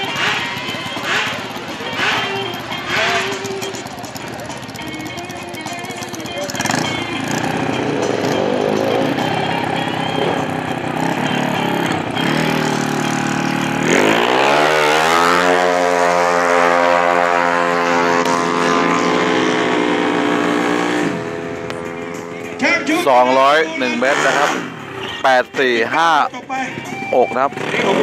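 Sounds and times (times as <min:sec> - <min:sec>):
motorcycle revving and accelerating: 0:00.0 - 0:28.0.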